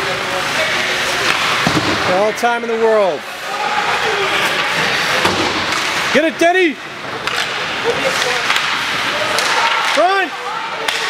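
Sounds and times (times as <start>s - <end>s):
steady hiss of rink noise: 0.0s - 11.0s.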